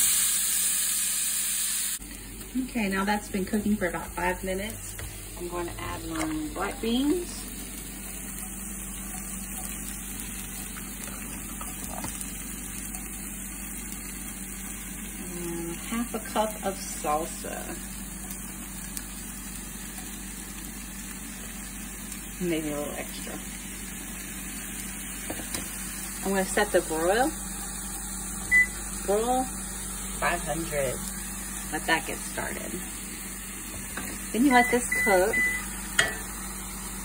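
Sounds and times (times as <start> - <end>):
tofu sizzling in oil: 0.0 - 5.4, 6.4 - 37.0
low even hum: 2.0 - 37.0
cup tapping on skillet: 25.2 - 25.7, 35.9 - 36.3.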